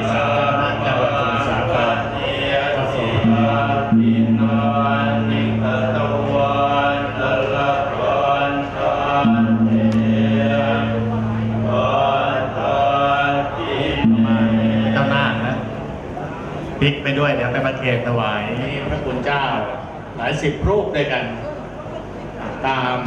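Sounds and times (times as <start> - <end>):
monks chanting in unison: 0.0 - 16.4.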